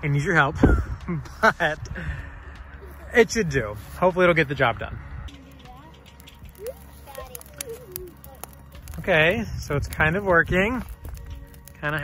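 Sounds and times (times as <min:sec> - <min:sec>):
low steady rumble: 0:00.0 - 0:11.9
fire crackling: 0:00.0 - 0:12.0.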